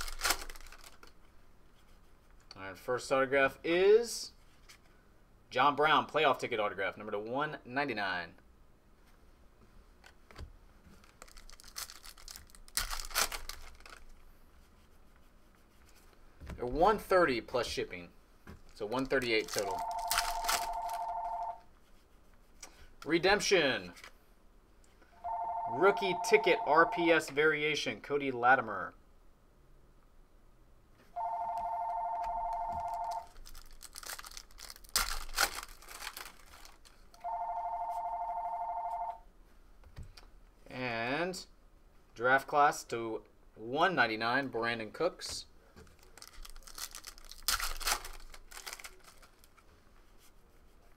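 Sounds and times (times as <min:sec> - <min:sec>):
wrapper ripping: 0:00.0 - 0:01.1, 0:11.0 - 0:14.2, 0:18.7 - 0:21.0, 0:33.0 - 0:37.0, 0:45.9 - 0:49.6
wrapper crinkling: 0:00.0 - 0:01.2, 0:11.0 - 0:14.2, 0:18.6 - 0:21.1, 0:32.8 - 0:37.2, 0:45.8 - 0:49.6
telephone ringing: 0:19.6 - 0:21.6, 0:25.2 - 0:27.1, 0:31.2 - 0:33.3, 0:37.2 - 0:39.2.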